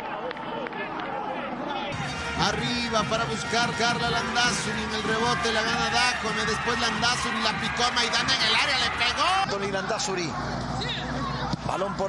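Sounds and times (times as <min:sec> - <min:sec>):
hubbub of indistinct voices: 0:00.0 - 0:12.0.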